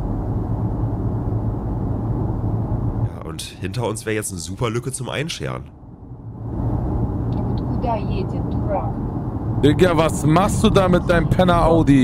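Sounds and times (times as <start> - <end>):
vehicle interior engine hum: 0.0 - 12.0.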